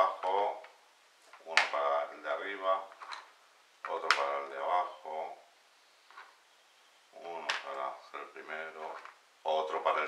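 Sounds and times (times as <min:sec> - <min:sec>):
person talking: 0:00.0 - 0:03.0, 0:03.8 - 0:05.5, 0:07.2 - 0:10.0.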